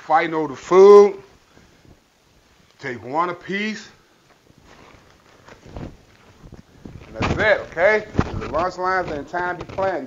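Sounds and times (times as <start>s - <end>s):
cloth apron rustling: 3.6s - 10.0s.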